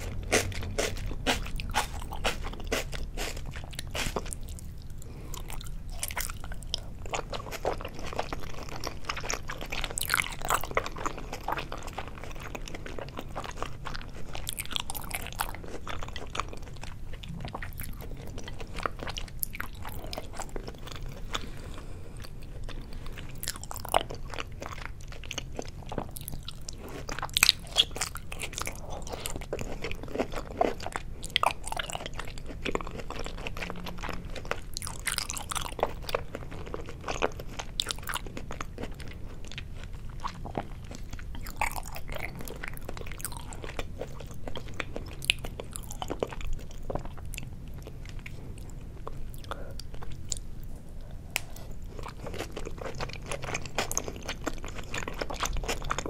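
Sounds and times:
close-miked chewing: 0.0 - 56.0.

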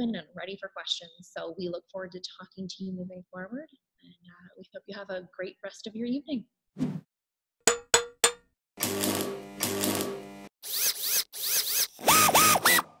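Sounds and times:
buzzing tone: 8.8 - 11.0.

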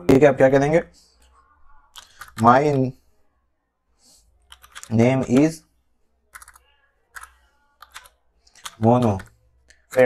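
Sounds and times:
person speaking: 0.0 - 3.0, 4.5 - 5.7, 6.4 - 10.0
keyboard keystrokes: 6.3 - 6.6, 7.2 - 9.3.

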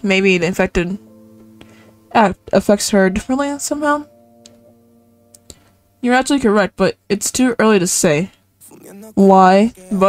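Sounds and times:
faint held tones: 0.0 - 7.6.

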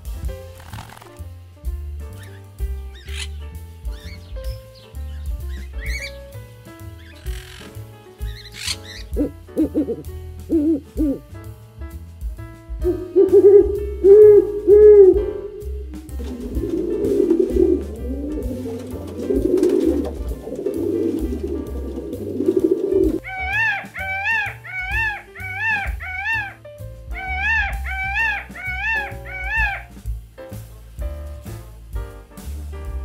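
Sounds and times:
background music with steady beat: 0.0 - 33.0
owl hooting: 2.2 - 4.4, 5.5 - 6.2, 7.1 - 11.2, 12.8 - 30.0
bird giving short loud calls: 3.0 - 3.4, 7.1 - 7.8, 8.4 - 11.2, 23.2 - 26.6, 27.2 - 29.9
pigeon cooing: 5.5 - 6.2, 8.3 - 11.2, 12.8 - 29.9.

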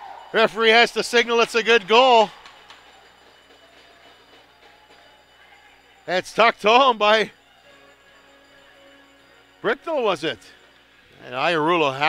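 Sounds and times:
thin high tones: 0.0 - 12.0.

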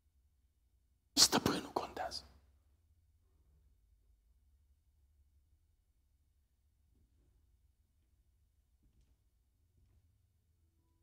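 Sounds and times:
man whispering: 1.2 - 2.5.

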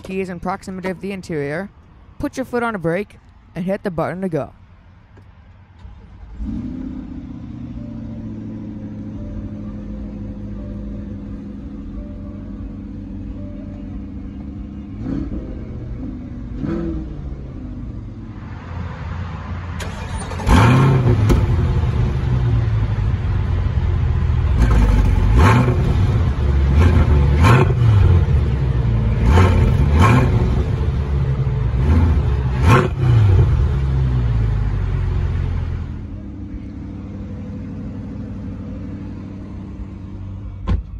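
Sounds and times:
car engine idling: 4.6 - 18.4, 19.6 - 40.9
car engine starting: 4.9 - 40.9
engine revving blips: 5.8 - 18.2, 19.8 - 23.5, 24.3 - 36.0.

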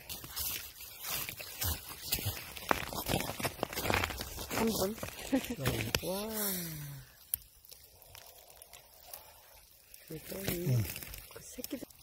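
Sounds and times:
rustling and scraping in snow: 0.0 - 7.0.

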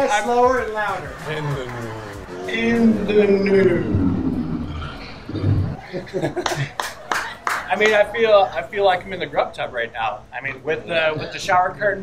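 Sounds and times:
low growl-like sound: 2.6 - 5.8.

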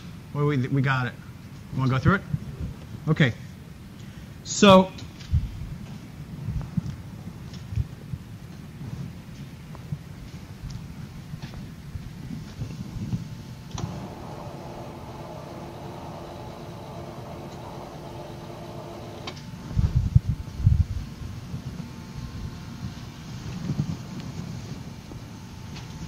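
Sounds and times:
steady mechanical hum: 0.0 - 26.0
low room rumble: 5.2 - 26.0.

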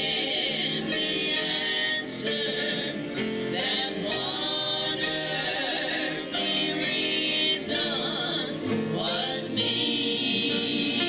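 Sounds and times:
gospel group singing in harmony: 0.0 - 11.0.

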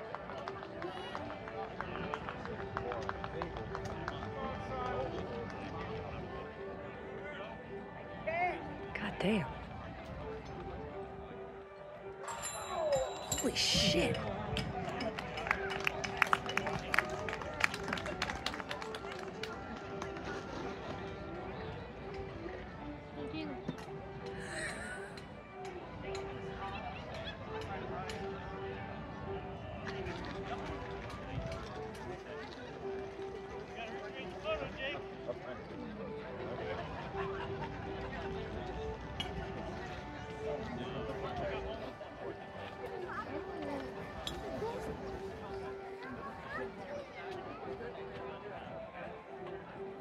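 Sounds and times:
spectators clapping: 0.0 - 5.5, 14.8 - 20.3
crowd voices: 0.0 - 50.0
music: 0.0 - 50.0.

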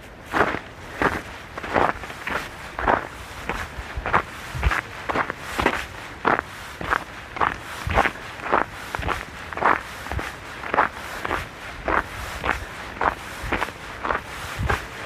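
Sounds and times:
footsteps in snow: 0.0 - 15.0.

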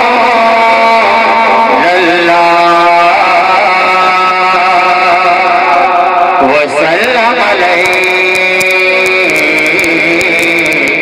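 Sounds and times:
man singing over loudspeakers: 0.0 - 11.0.

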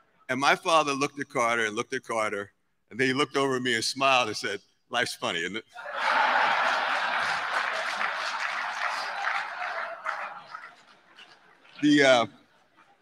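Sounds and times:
audience laughing: 5.8 - 10.9.

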